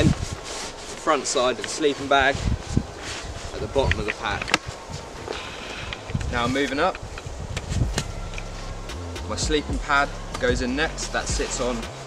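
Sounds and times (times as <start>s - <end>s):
nylon sack rustling: 0.0s - 12.0s
low steady hum: 2.4s - 12.0s.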